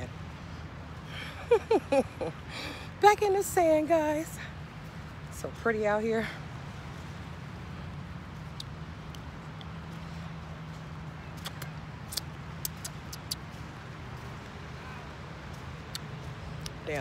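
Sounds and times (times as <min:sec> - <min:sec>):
lollipop sucking clicks and smacks: 0:11.4 - 0:13.4.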